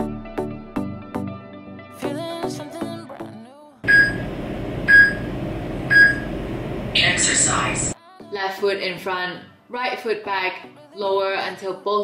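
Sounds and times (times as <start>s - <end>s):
background music with sung melody: 0.0s - 4.2s, 8.0s - 12.0s
short high timer beeps: 3.9s - 4.2s, 4.9s - 5.3s, 5.9s - 6.3s.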